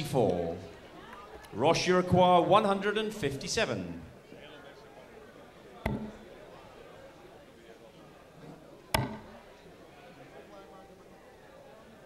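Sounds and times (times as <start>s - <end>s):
faint murmur of audience: 0.0s - 2.7s, 3.6s - 12.0s
dart striking dartboard: 5.8s - 6.3s, 8.9s - 9.4s.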